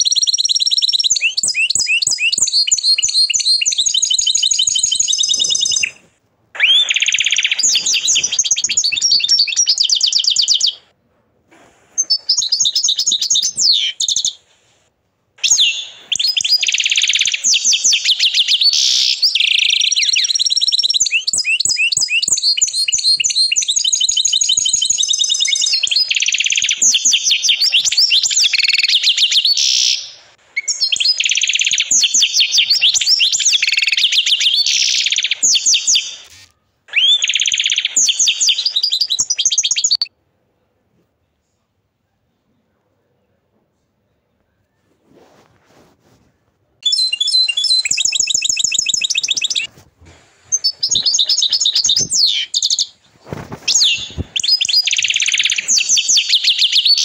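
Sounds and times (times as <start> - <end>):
canary singing trills: 0.0 - 10.9, 12.0 - 14.5, 15.4 - 40.1, 46.8 - 57.0.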